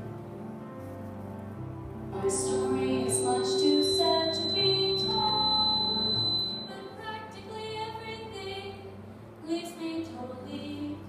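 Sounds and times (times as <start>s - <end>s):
thin steady high tone: 2.2s - 7.0s.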